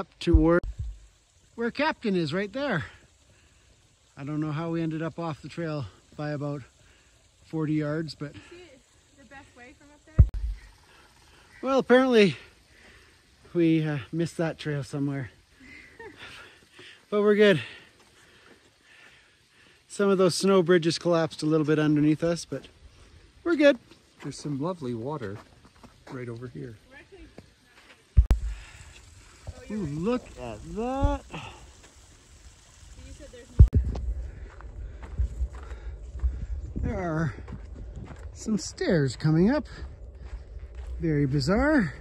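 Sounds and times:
water trickling: 0:00.0 - 0:39.6.

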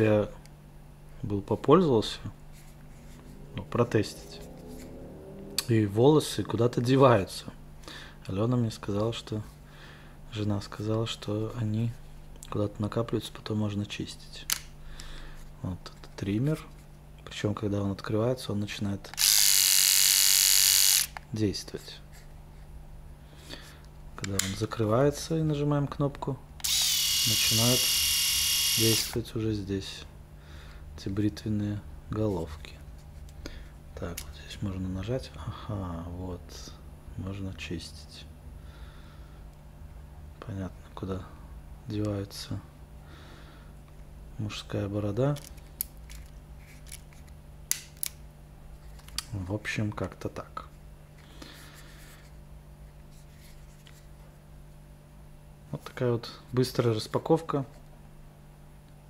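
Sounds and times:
steady low hum: 0:00.0 - 0:59.0
electric shaver buzzing: 0:19.2 - 0:21.2, 0:26.6 - 0:29.2.

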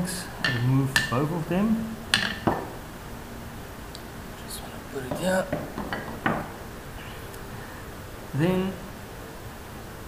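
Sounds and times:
metal tube knocking on table: 0:05.1 - 0:06.6.

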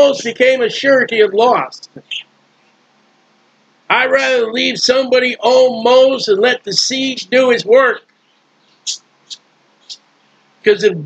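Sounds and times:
man speaking: 0:00.0 - 0:02.3, 0:03.9 - 0:08.0, 0:10.7 - 0:11.0.

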